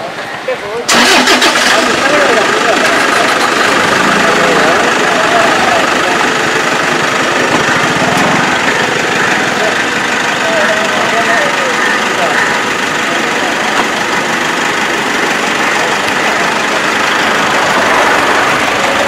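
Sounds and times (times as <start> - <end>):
people talking: 0.0 - 19.0
car engine running: 0.9 - 19.0.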